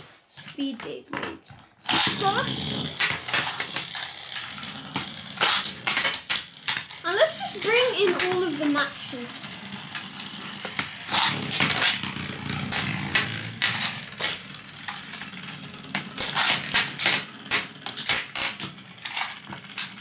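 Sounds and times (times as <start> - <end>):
metal spinning tops clattering: 0.5 - 20.0.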